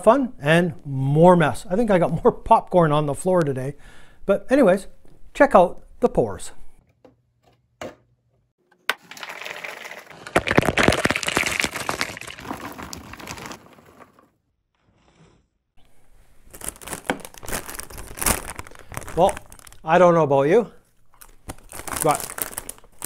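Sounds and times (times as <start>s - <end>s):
popcorn pouring into a container: 8.9s - 14.1s
snack bag crinkling: 9.1s - 14.1s, 16.4s - 19.9s, 21.1s - 23.0s.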